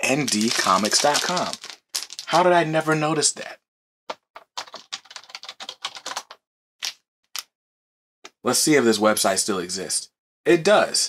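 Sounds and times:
computer keyboard typing: 4.1 - 6.4.

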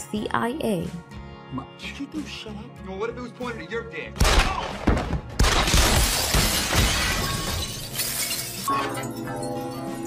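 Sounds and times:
gunshots: 4.2 - 6.8
debris breaking: 4.2 - 9.1
glass shattering: 5.4 - 10.0.

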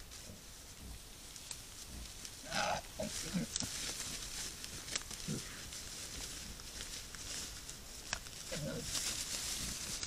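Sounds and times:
wild boar grunting: 1.9 - 3.6, 8.5 - 8.9.

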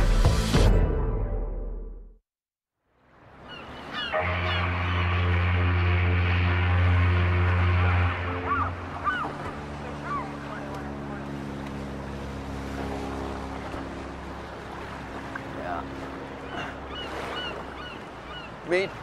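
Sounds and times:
gulls calling: 3.2 - 19.0
ship's horn blast: 3.8 - 17.6
water washing: 4.0 - 19.0
low steady drone: 4.1 - 17.2.

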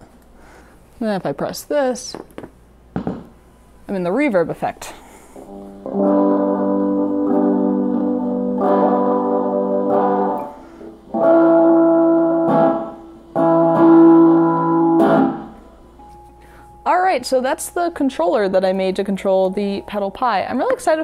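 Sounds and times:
electric guitar chords with reverb: 5.4 - 16.6.

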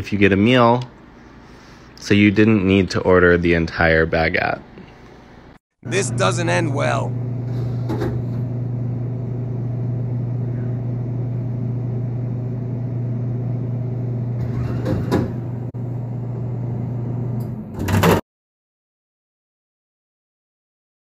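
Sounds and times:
vending machine humming: 5.8 - 18.2.

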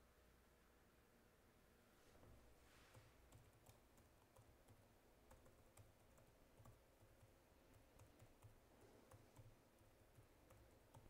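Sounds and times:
soft irregular clicks: 2.8 - 11.0.

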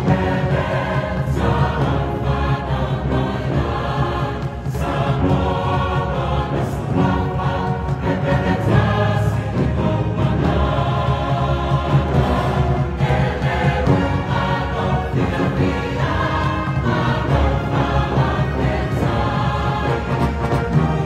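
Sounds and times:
large choir singing: 0.0 - 21.0
orchestra with brass: 0.0 - 21.0.

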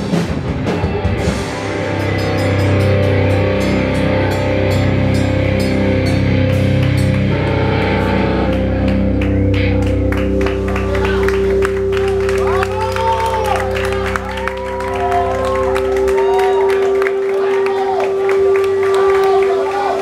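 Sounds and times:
drum and cymbal hits: 0.0 - 8.3
electric guitars and bass chords: 0.0 - 20.0.

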